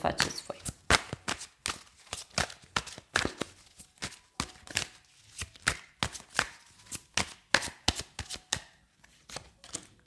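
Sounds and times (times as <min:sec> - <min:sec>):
cards being shuffled by hand: 0:00.1 - 0:10.0.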